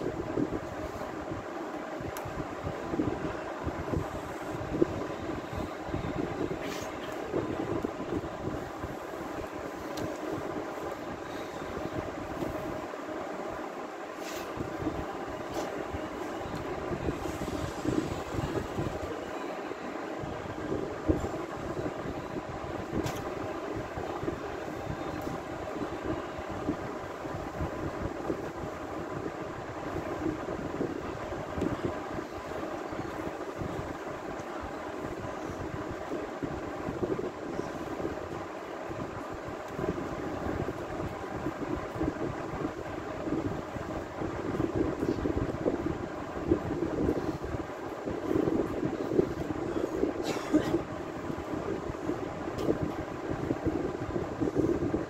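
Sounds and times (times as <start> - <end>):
faint hum: 0.0 - 55.0.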